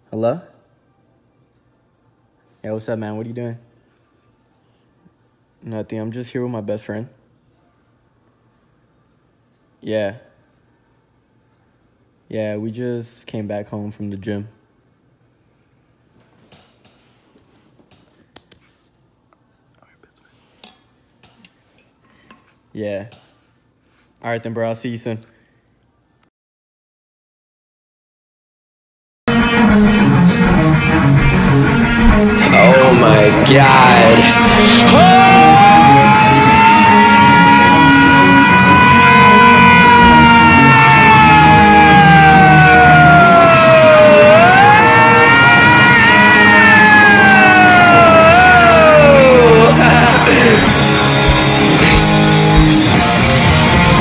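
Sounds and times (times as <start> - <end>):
rock band playing: 29.3 - 34.4, 46.4 - 54.0
man singing long high note: 32.4 - 52.1.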